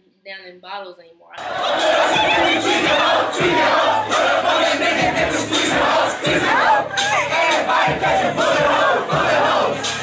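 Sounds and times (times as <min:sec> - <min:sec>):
crowd shouting and yelling: 0:01.4 - 0:10.0.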